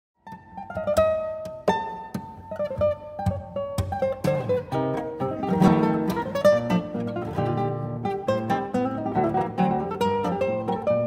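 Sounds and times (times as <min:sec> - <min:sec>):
classical guitars playing: 0:00.2 - 0:11.0.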